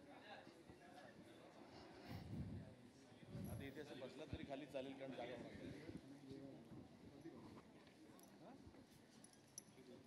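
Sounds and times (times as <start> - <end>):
faint murmur of voices: 0.0 - 10.0.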